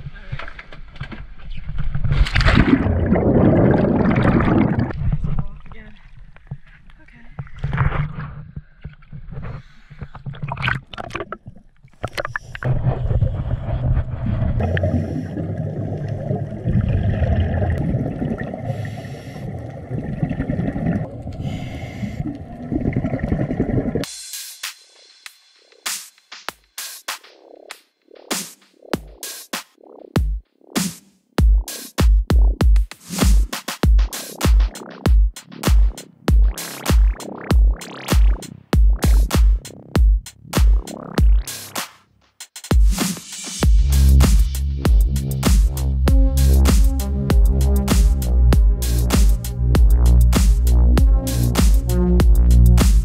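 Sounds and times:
water sloshing and splashing: 1.6s - 24.1s
exhaust bubbles: 2.4s - 5.0s, 10.2s - 24.1s
underwater regulator breathing: 8.2s - 10.6s, 12.0s - 16.2s, 18.5s - 20.0s, 21.2s - 22.7s.

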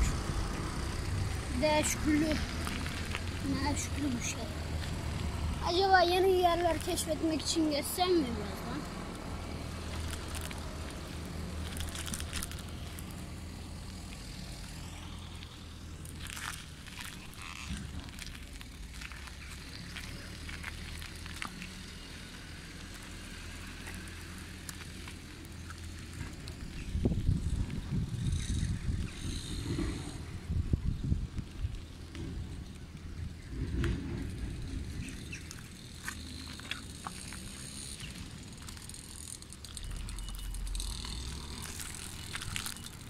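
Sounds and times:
bicycle riding rumble: 0.0s - 43.0s
bicycle jolting and rattling: 9.8s - 13.4s, 14.2s - 31.0s, 31.6s - 43.0s.

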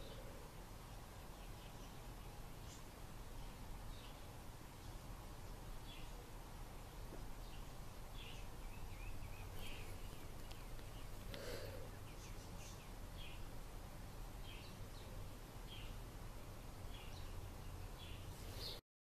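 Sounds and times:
faint bird chirps: 0.0s - 13.5s, 16.8s - 18.8s
low background hum: 0.0s - 18.8s.

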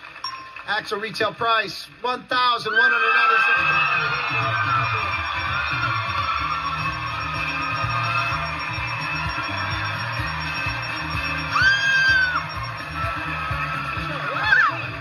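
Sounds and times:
upbeat game show music: 0.0s - 15.0s
audience cheering and yelling: 2.5s - 15.0s
loud high scream: 2.7s - 9.0s, 11.4s - 13.4s, 14.3s - 14.8s.

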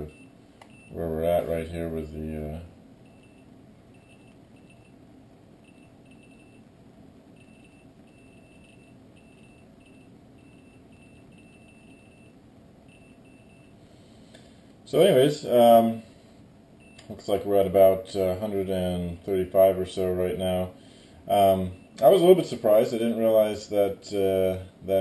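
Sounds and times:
geiger counter beeps: 3.0s - 5.0s, 5.6s - 6.7s, 7.4s - 13.8s.

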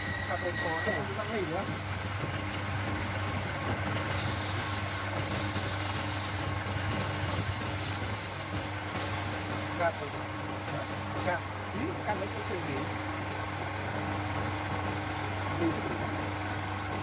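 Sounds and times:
file rasping on spinning wood: 9.2s - 17.0s.

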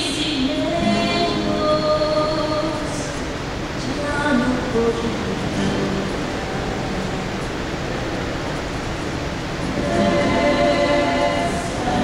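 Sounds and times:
woman singing a long note: 0.0s - 3.2s
acoustic guitars and double bass: 0.1s - 12.0s.

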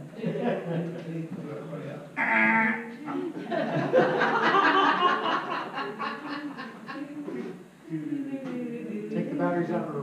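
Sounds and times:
congregation laughing: 3.3s - 7.2s.

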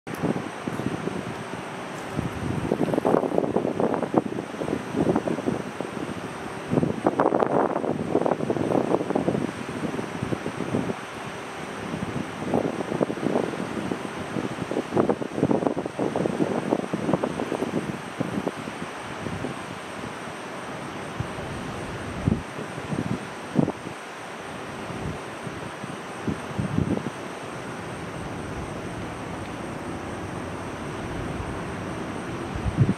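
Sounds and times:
wind buffeting microphone: 0.1s - 20.2s, 20.8s - 24.0s, 24.6s - 27.2s, 27.8s - 32.9s
steady outdoor hiss: 0.1s - 32.9s.

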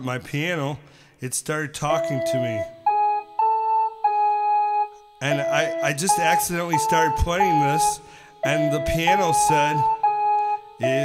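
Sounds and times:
keyboard notes: 1.8s - 11.0s.

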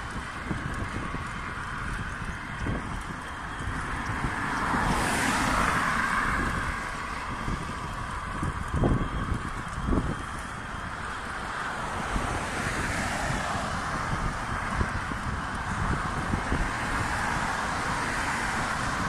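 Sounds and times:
traffic noise: 0.0s - 19.0s
wind rushing over microphone: 0.0s - 19.0s.

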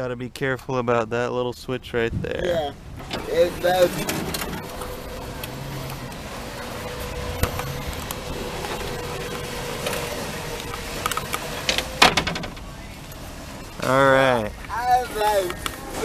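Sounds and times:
wheelchair motors whining: 3.0s - 14.0s.

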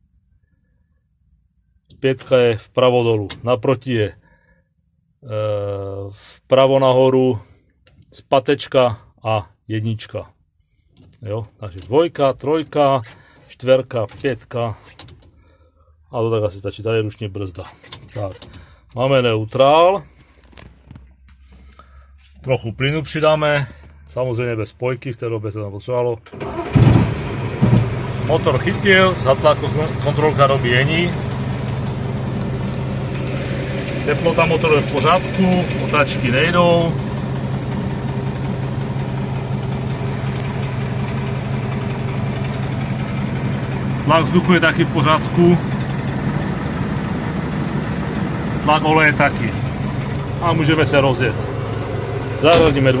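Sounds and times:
diesel engine idling: 26.3s - 53.0s.

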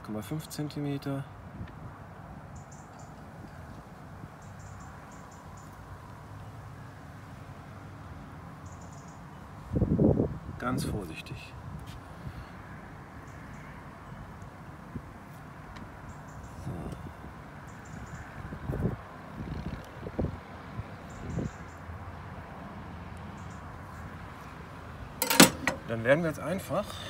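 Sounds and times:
outdoor background hiss: 18.8s - 27.0s
glass jar clatter: 25.2s - 25.9s.

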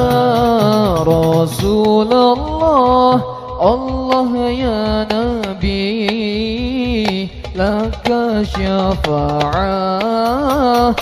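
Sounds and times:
hand-struck frame drums: 0.0s - 11.0s
man singing into a microphone: 0.0s - 11.0s.

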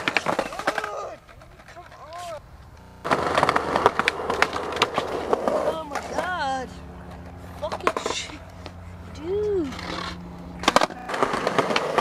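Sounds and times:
skateboard clacks and knocks: 0.0s - 2.3s, 3.0s - 6.3s, 7.6s - 8.4s, 9.7s - 12.0s
skateboard rolling on concrete: 0.0s - 12.0s
person yelling: 9.1s - 9.8s.

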